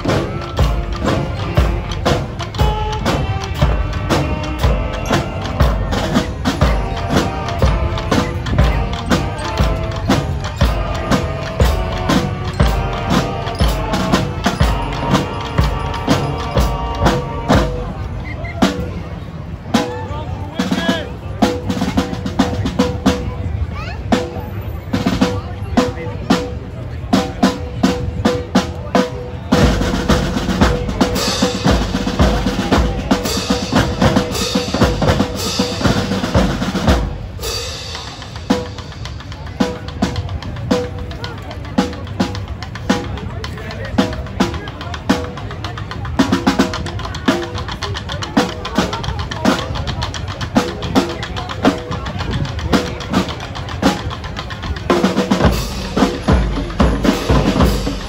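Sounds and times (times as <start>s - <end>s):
drumline playing drum cadence: 0.0s - 58.0s.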